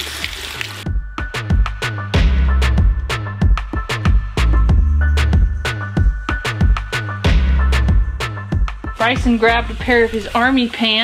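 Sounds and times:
water running into metal sink: 0:00.0 - 0:00.9
music with heavy beat: 0:00.9 - 0:10.0.

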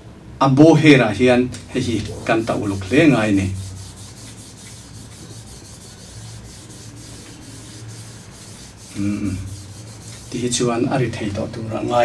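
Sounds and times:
rosin rubbing on violin bow: 0:01.8 - 0:10.6.

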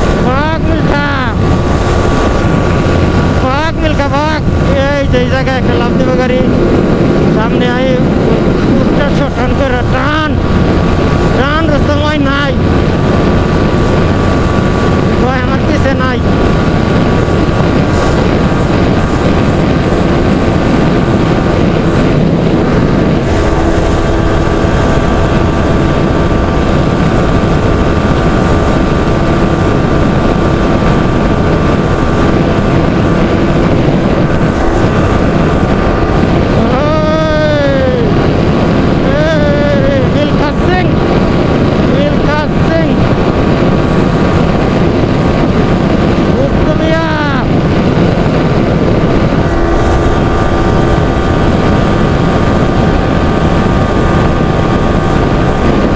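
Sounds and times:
motorcycle engine at high speed: 0:00.0 - 0:55.9
wind noise on microphone: 0:00.0 - 0:55.9.

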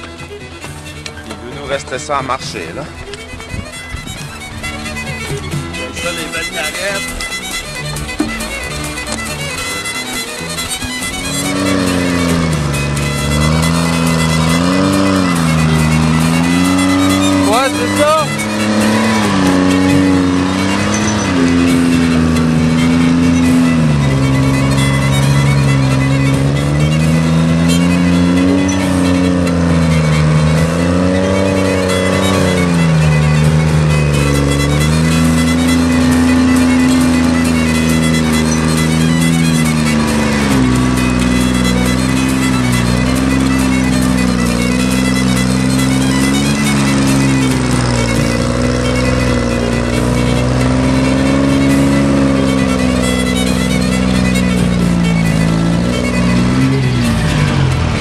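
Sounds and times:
diesel engine working under load: 0:00.0 - 0:58.0.

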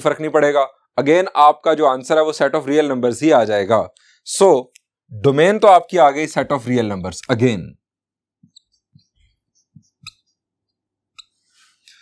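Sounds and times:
marker pen squeaking on whiteboard: 0:08.4 - 0:10.4, 0:11.1 - 0:12.0.

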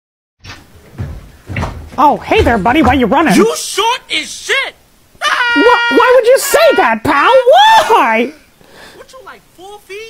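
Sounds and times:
dull thumps and knocks: 0:00.4 - 0:03.4.

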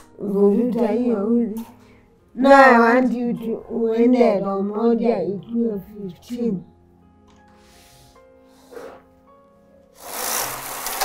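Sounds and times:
faint background music: 0:00.0 - 0:11.0
knitting machine carriage sliding: 0:10.0 - 0:11.0
short scrape: 0:10.0 - 0:11.0.

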